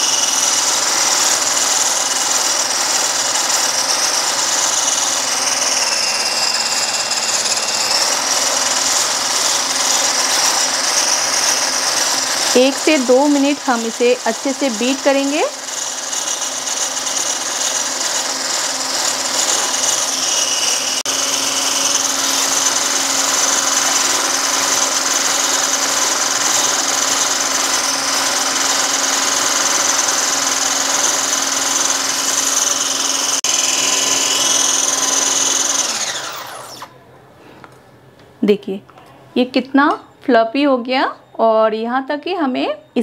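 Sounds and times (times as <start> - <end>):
electric hand beater whisking: 0.0 - 36.9.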